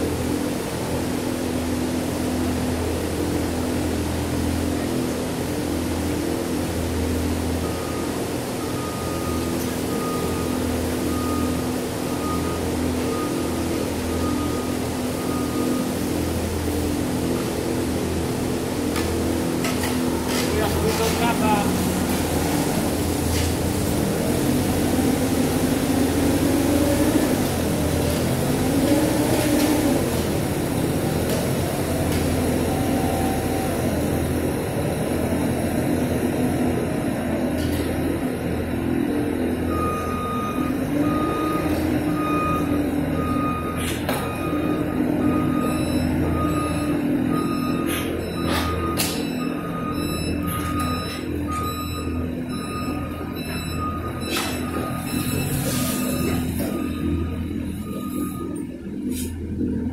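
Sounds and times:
forklift engine running: 0.0s - 59.9s
reversing alarm beeping: 6.8s - 18.4s, 20.3s - 23.4s, 24.0s - 36.9s, 39.2s - 59.8s.

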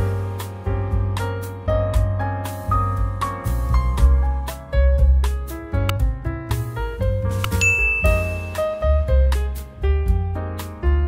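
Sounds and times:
background piano music: 0.0s - 11.0s
high bell ding: 7.6s - 8.8s.

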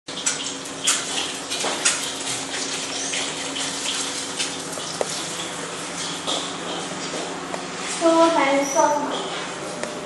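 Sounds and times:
water running into metal sink: 0.1s - 6.2s.

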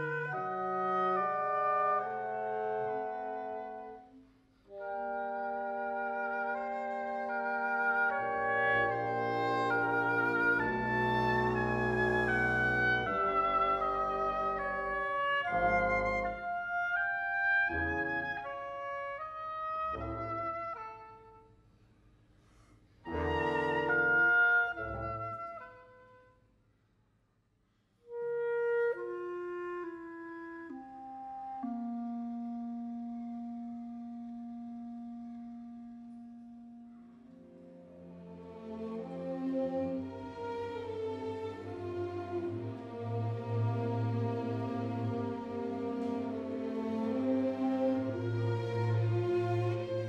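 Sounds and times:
clarinet melody: 0.0s - 21.6s, 23.0s - 26.5s, 28.0s - 50.0s
low orchestral chords: 0.0s - 21.6s, 23.0s - 26.0s, 28.9s - 50.0s.

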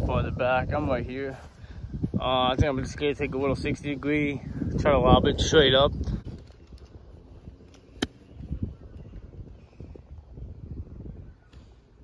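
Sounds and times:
low wind noise: 0.0s - 12.0s.

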